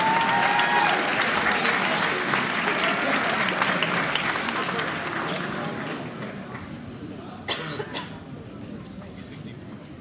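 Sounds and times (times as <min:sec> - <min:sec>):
background chatter: 0:00.6 - 0:10.0
person coughing: 0:07.5 - 0:08.2.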